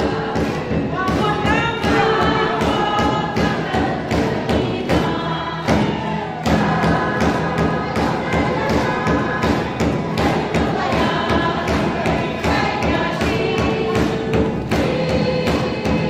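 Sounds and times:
congregation singing worship song: 0:00.0 - 0:16.0
drums beating: 0:00.0 - 0:16.0
hand-claps: 0:00.0 - 0:16.0.

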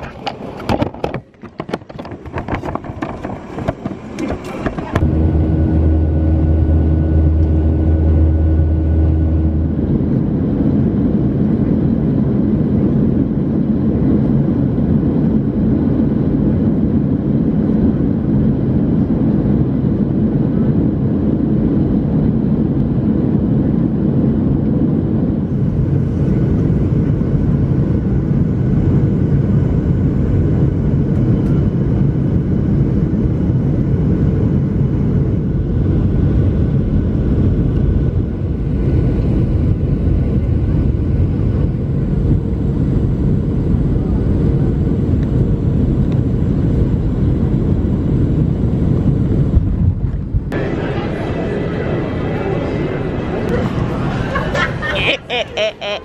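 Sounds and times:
jet engine and airflow rumble: 0:00.0 - 0:56.0.

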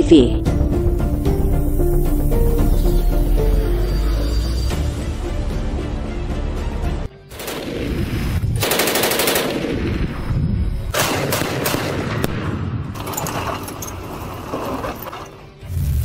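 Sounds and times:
rapid automatic gunfire: 0:07.3 - 0:07.8, 0:08.6 - 0:09.8, 0:11.0 - 0:12.1.

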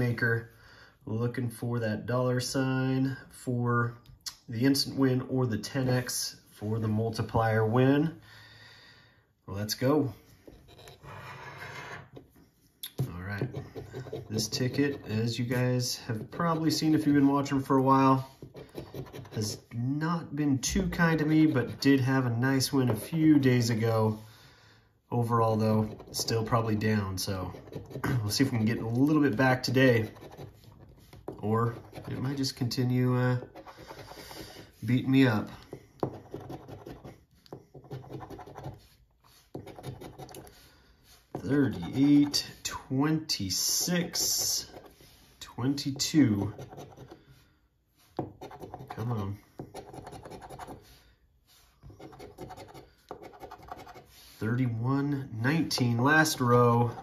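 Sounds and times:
coin scratching lottery ticket: 0:52.0 - 0:54.1.

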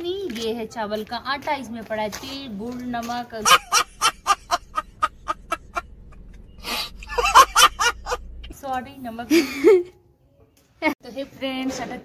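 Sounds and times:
man laughing hard: 0:03.4 - 0:05.8, 0:06.7 - 0:08.3.

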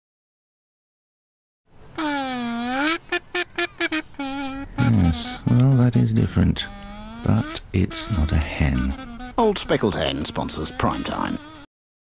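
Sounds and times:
alphorn notes: 0:02.8 - 0:11.5.

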